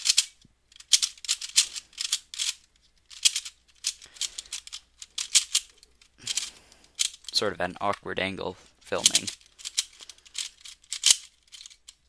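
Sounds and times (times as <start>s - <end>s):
plastic puzzle cube clicking: 0.0s - 7.4s, 9.0s - 12.0s.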